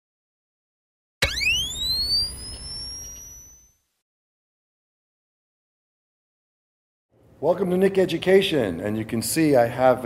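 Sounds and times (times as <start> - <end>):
electronic rising sweep tone: 1.2 - 3.8.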